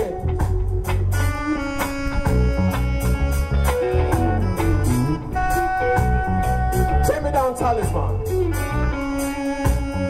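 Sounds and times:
electric guitar lead bending: 0.0s - 10.0s
reggae band playing: 0.0s - 10.0s
steady bass: 0.0s - 10.0s.

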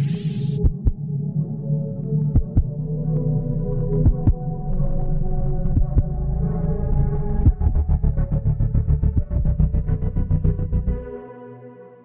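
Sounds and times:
heartbeat thumps: 0.6s - 1.0s, 2.4s - 2.8s, 4.0s - 4.4s, 5.7s - 6.1s, 7.4s - 7.8s.

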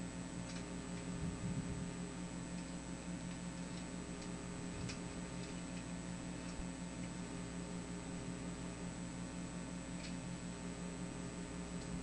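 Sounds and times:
electrical hum with high whine: 0.0s - 12.0s.

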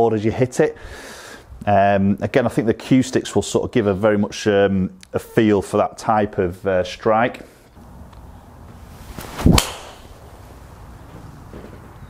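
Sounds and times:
golf club swish: 8.8s - 10.5s
golf ball impact crack: 9.1s - 10.4s.

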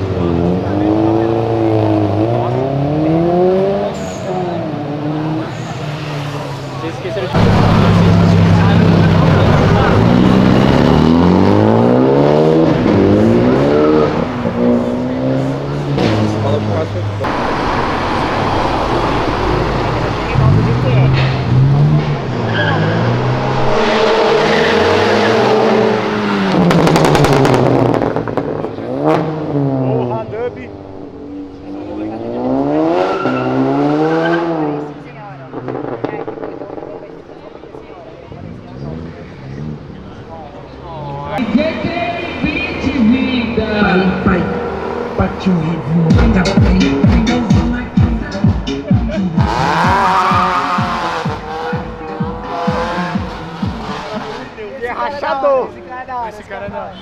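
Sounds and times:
car engines revving: 0.0s - 57.0s
low rapid beating: 44.2s - 54.0s.

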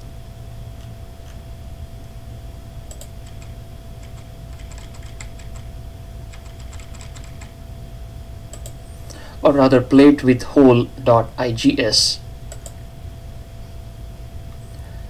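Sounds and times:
steady low hum: 0.0s - 15.0s
computer mouse clicks: 2.9s - 5.7s, 6.3s - 7.5s, 8.5s - 8.8s, 12.5s - 12.8s
mouse scroll-wheel ticks: 2.9s - 5.7s, 6.3s - 7.5s.

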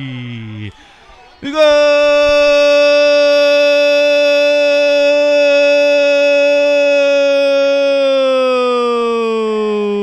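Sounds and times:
commentator's drawn-out goal cry: 0.7s - 10.0s.

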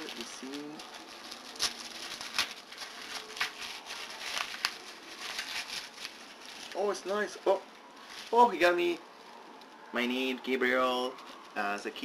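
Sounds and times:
paper wrapping crinkling: 0.0s - 9.9s.

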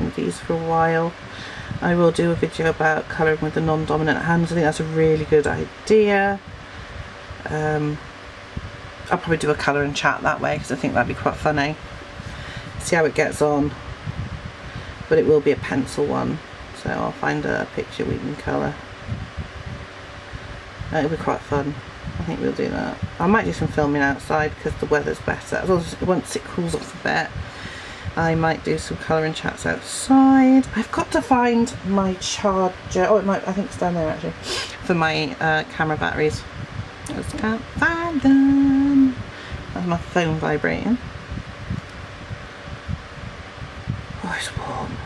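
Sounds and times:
faint steady hum: 0.0s - 45.0s
low irregular rumble: 0.0s - 45.0s
steady background hiss: 0.0s - 45.0s.

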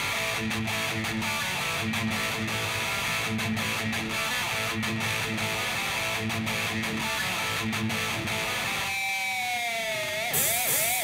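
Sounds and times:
distorted electric guitar dive: 0.0s - 11.0s
bright hiss: 10.3s - 11.0s.

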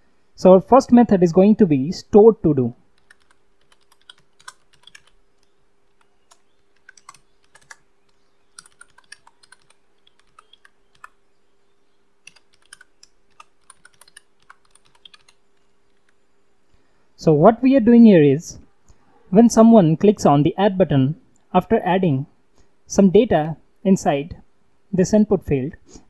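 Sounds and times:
faint steady hum: 0.0s - 26.0s
computer keyboard typing: 2.9s - 11.2s, 12.2s - 16.2s.

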